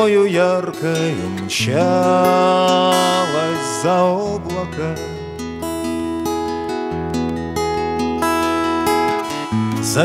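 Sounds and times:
man singing: 0:00.0 - 0:05.4, 0:09.7 - 0:10.0
acoustic guitar strumming chords: 0:00.0 - 0:10.0.

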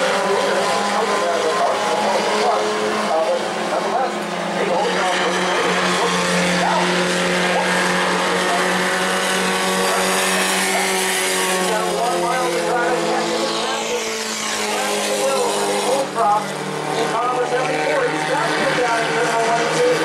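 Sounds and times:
stock car engines racing: 0:00.0 - 0:20.0.

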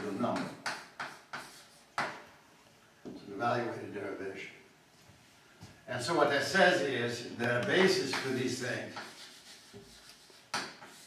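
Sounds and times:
chalk tapping on blackboard: 0:00.0 - 0:02.2, 0:07.6 - 0:11.0.

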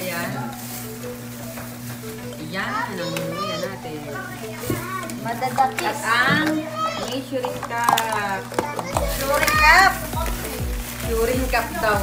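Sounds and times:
young child's voice: 0:03.0 - 0:05.2, 0:06.6 - 0:07.2.

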